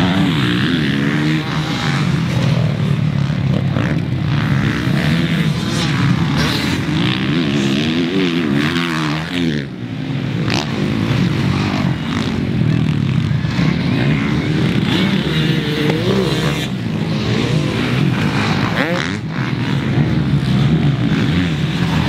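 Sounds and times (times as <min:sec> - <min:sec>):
motocross bike engines revving: 0:00.0 - 0:22.0.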